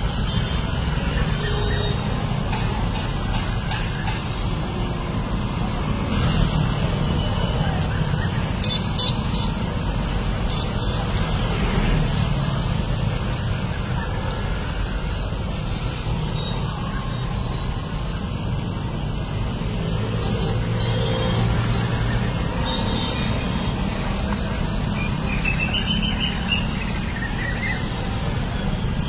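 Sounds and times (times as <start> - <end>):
street traffic passing: 0.0 - 29.0.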